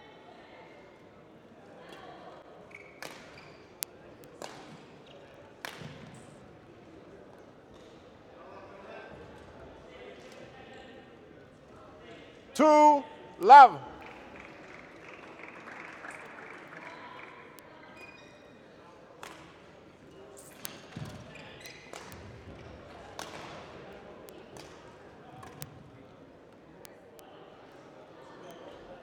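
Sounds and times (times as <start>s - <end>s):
murmur of voices: 12.6s - 14.1s.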